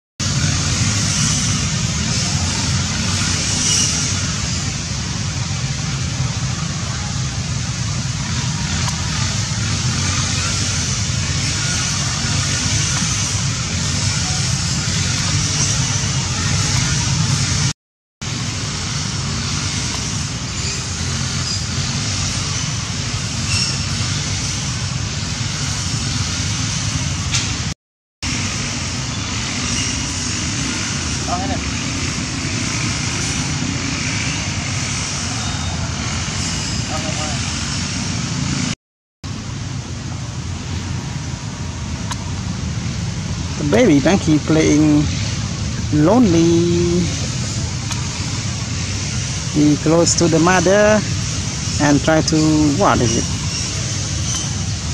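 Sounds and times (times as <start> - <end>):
high hiss: 40.8 - 54.9.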